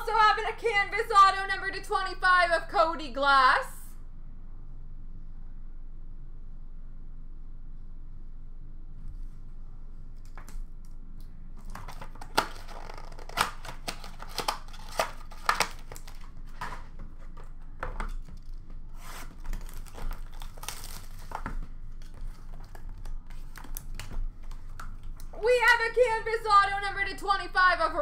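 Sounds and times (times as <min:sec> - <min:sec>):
cardboard packaging crinkling and tearing: 0:11.6 - 0:25.2.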